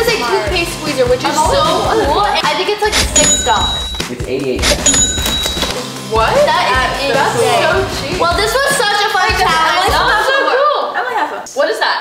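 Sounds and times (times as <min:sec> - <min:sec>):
cash register ka-ching: 0:02.9 - 0:05.8
bright ringing bell tone: 0:03.1 - 0:04.1, 0:04.8 - 0:05.8.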